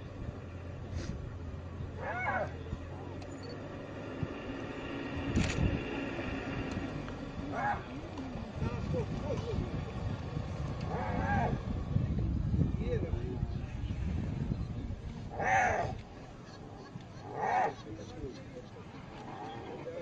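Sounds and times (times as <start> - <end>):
engine idling hum: 0.0 - 20.0
voice-like calls: 15.3 - 20.0.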